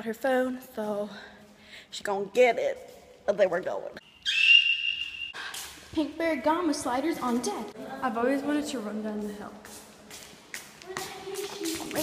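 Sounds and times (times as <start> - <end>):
high steady whistling tone: 4.0 - 5.5.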